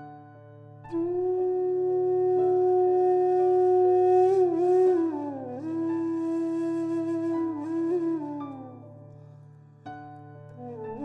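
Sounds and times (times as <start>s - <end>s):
flute holding long note: 0.9s - 9.1s, 10.6s - 11.0s.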